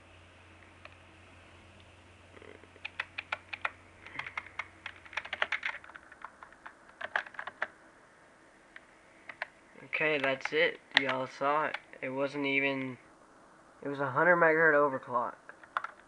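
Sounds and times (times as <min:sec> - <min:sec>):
low steady hum: 0:00.0 - 0:16.0
keyboard keys tapping: 0:02.4 - 0:07.7, 0:09.3 - 0:09.5, 0:10.1 - 0:11.8, 0:15.5 - 0:16.0.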